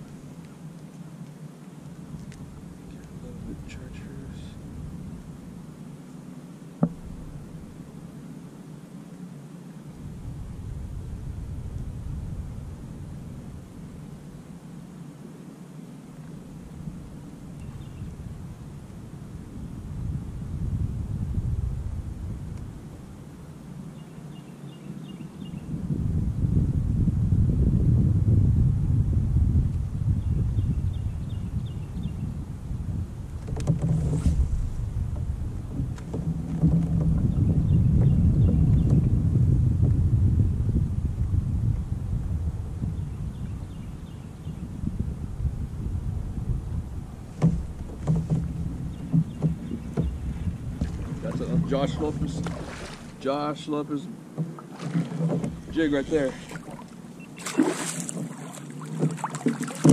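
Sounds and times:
wind rumbling on microphone: 0.0s - 6.1s, 6.8s - 8.6s, 9.8s - 15.0s, 16.1s - 59.9s
sharp knock: 6.8s - 7.1s.

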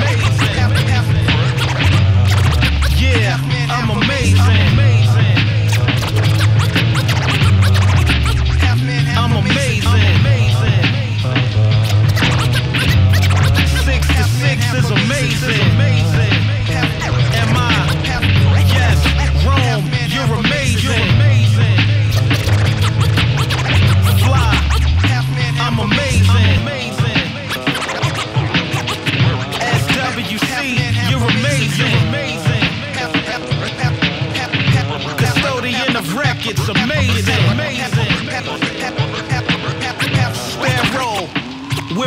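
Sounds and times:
deep bass line: 0.0s - 27.2s, 30.6s - 32.6s, 36.2s - 38.0s
hip hop beat: 0.0s - 42.0s
turntable scratching: 0.0s - 42.0s.

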